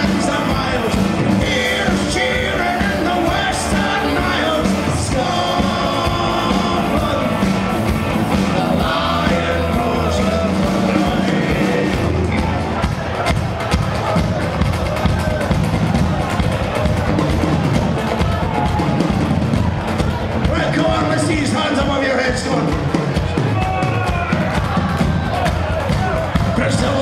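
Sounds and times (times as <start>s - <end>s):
live rock band playing: 0.0s - 27.0s.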